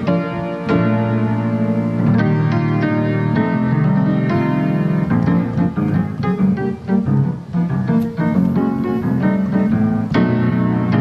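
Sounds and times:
solo grand piano chords: 0:00.0 - 0:11.0.

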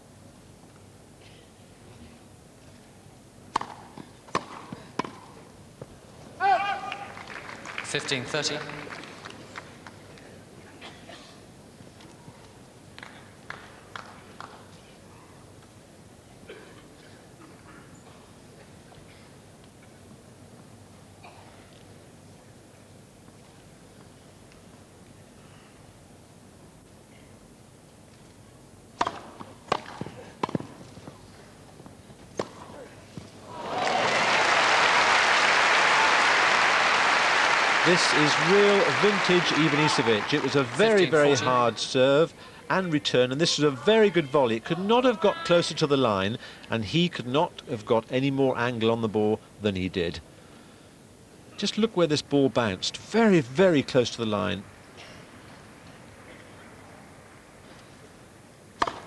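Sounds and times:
tennis ball struck by racket: 0:03.5 - 0:05.4, 0:29.0 - 0:30.9, 0:32.3 - 0:32.7, 0:58.8 - 0:59.0
crowd applauding: 0:06.7 - 0:10.0, 0:33.5 - 0:41.8.

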